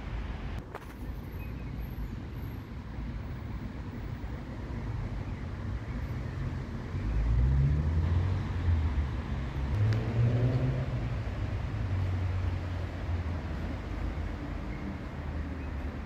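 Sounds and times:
low traffic hum: 0:00.0 - 0:16.0
vehicle engine: 0:06.2 - 0:16.0.

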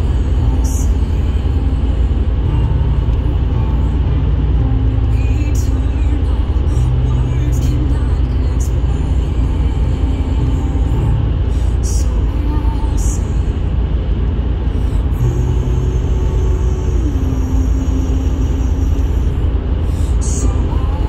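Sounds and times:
car road noise rumble: 0:00.0 - 0:21.0.

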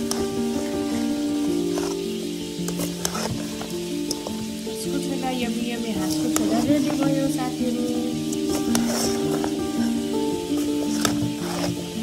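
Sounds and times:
light sizzle: 0:00.0 - 0:12.0
music of sustained notes: 0:00.0 - 0:12.0.

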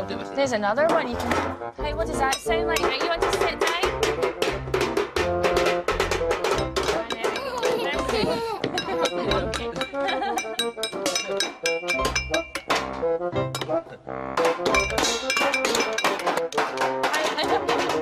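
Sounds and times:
wooden spoons banging on metal pots: 0:00.5 - 0:18.0.

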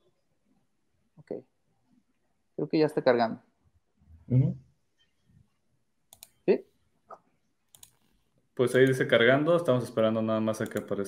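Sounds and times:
computer mouse clicks: 0:06.1 - 0:06.4, 0:07.7 - 0:09.1, 0:10.6 - 0:11.0.

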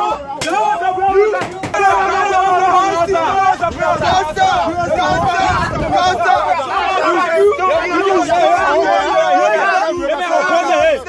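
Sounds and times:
voices talking and shouting: 0:00.0 - 0:11.0.

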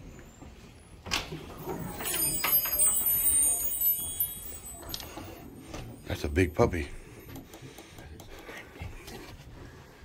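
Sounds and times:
metallic jingling: 0:01.6 - 0:06.6.

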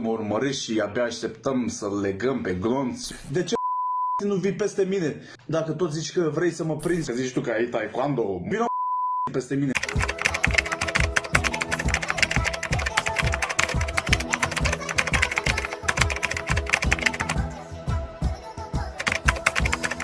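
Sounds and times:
keyboard typing clicks: 0:09.8 - 0:17.4, 0:19.0 - 0:20.0.

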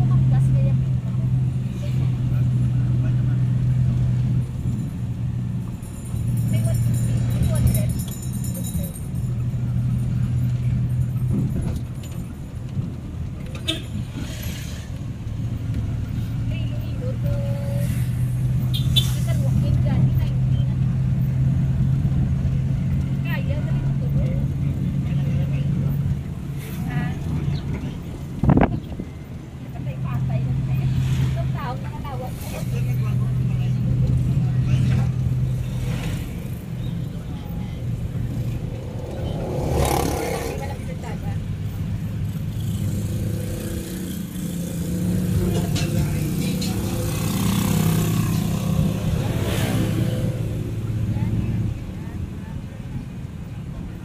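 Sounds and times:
road noise: 0:00.0 - 0:54.0
car engine running: 0:31.6 - 0:43.3.

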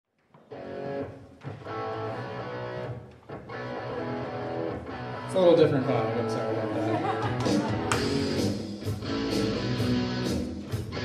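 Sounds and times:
strummed guitar chords: 0:00.5 - 0:11.0.

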